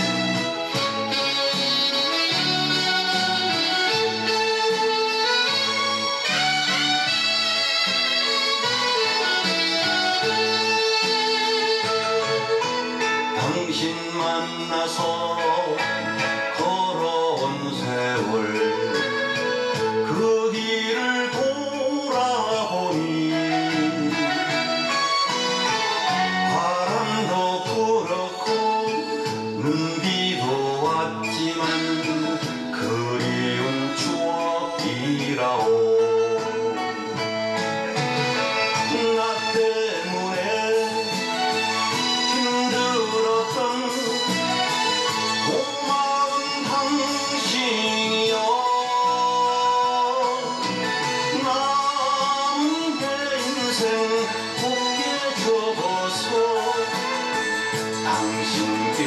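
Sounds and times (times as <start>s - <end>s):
band accompaniment: 0.0s - 59.0s
man singing: 0.0s - 59.0s
pop song backing music: 0.0s - 59.0s.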